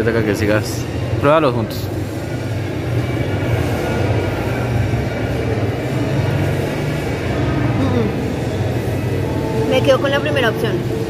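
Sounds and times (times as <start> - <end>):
indistinct background chatter: 0.0 - 11.0.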